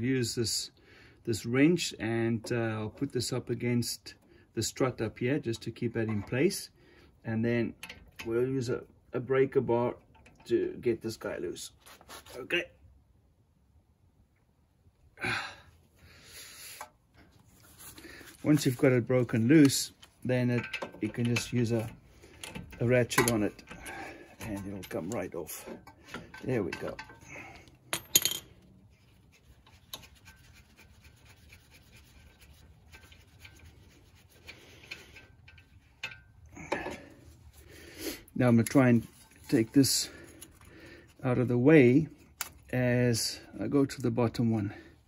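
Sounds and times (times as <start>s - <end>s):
nut scraping on bolt: 18.5s - 28.6s, 29.2s - 37.2s
socket rubbing and scraping on nut: 28.9s - 36.4s.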